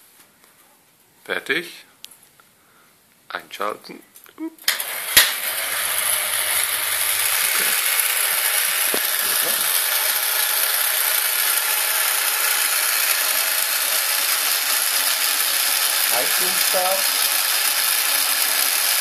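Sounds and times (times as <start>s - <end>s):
toaster motor running: 4.7s - 19.0s.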